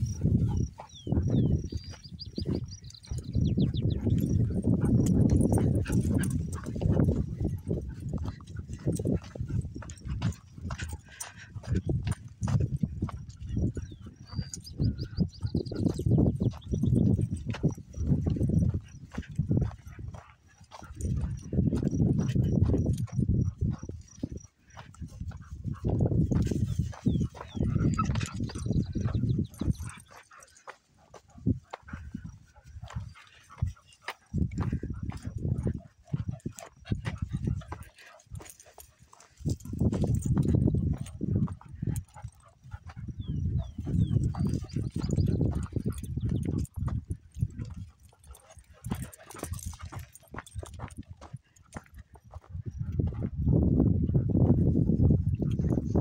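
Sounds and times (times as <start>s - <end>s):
wind gusting on microphone: 0.0s - 30.5s, 31.1s - 56.0s
footsteps on dirt trail: 0.0s - 56.0s.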